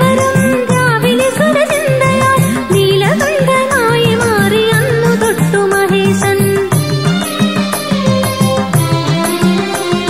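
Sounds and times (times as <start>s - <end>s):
devotional song melody: 0.0s - 10.0s.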